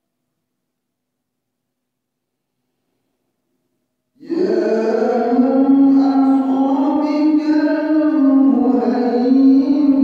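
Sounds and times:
man chanting a held note: 4.2 - 10.0.

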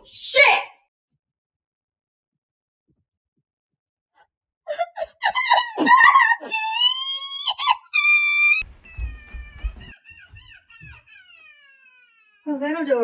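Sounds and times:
high-pitched wailing cries: 4.7 - 13.0.

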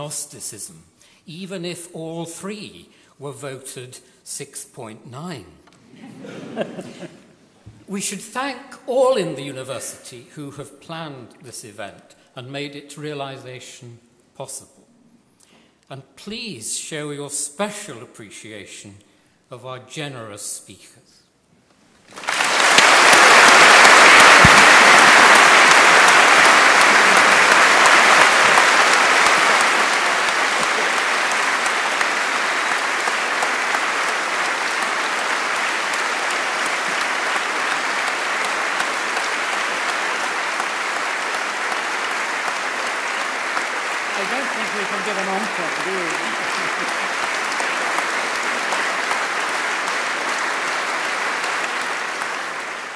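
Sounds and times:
audience applauding: 22.1 - 52.9.

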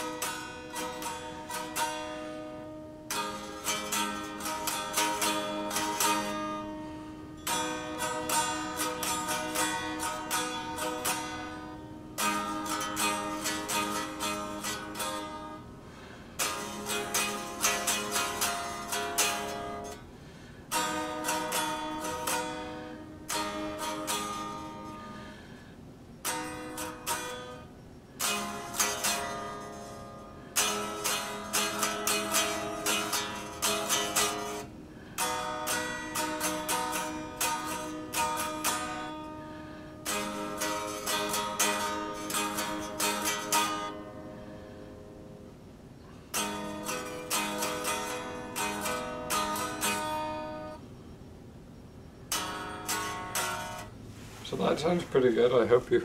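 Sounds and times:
acoustic guitar chords strummed: 0.0 - 50.8, 52.2 - 56.0.

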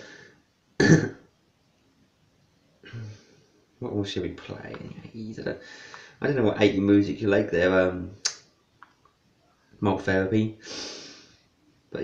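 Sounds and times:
man coughing: 0.8 - 1.3.

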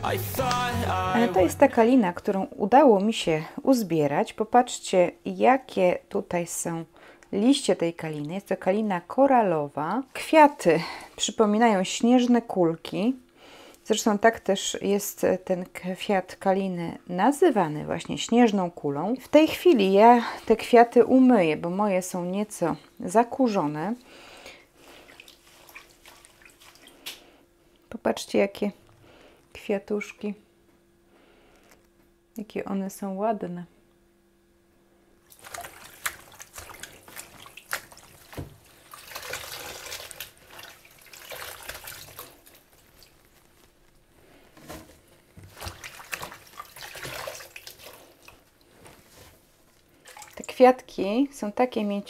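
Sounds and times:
water dripping and splashing: 25.0 - 27.2, 35.3 - 43.7, 45.4 - 48.7, 50.0 - 50.6.

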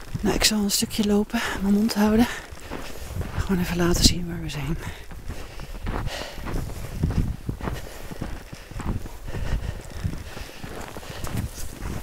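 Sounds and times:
footsteps in deep snow: 0.0 - 12.0.

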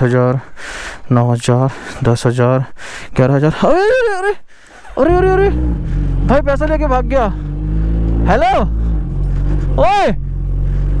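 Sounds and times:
man shouting: 5.0 - 7.4, 8.2 - 8.8, 9.7 - 10.2
motorcycle engine running: 5.1 - 11.0.

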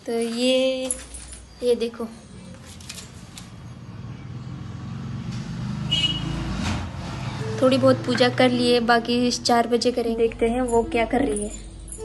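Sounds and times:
engine rumble: 1.5 - 12.0.

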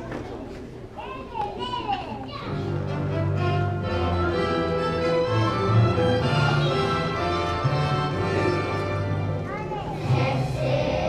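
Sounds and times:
children chattering: 0.0 - 5.1, 5.9 - 11.0
child's high voice: 1.0 - 2.7, 9.4 - 10.2
orchestral accompaniment track: 2.5 - 11.0.

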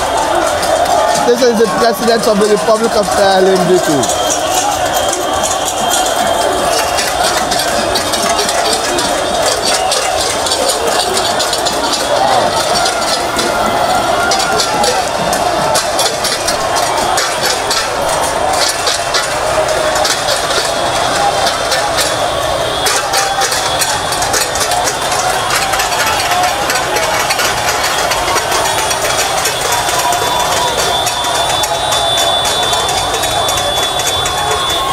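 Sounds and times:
crowd shouting and singing: 0.0 - 34.9
sharp clicks and clinks: 0.0 - 34.9.

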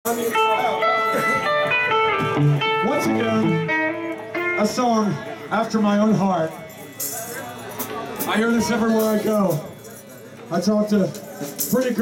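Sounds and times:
drum kit: 0.1 - 4.6
electric guitars ringing: 0.1 - 10.1.

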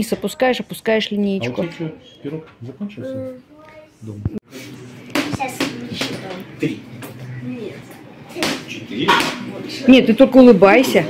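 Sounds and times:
rubber ball bouncing on hard floor: 5.1 - 6.4.

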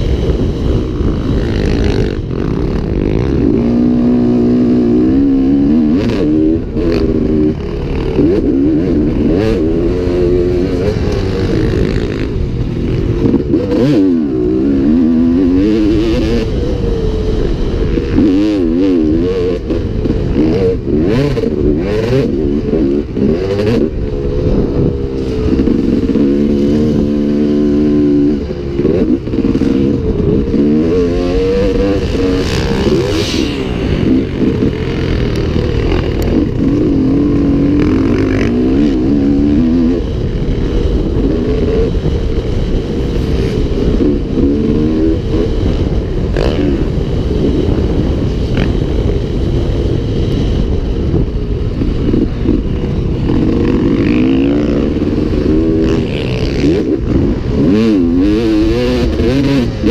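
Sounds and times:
dirt bike engine revving: 0.0 - 59.9.

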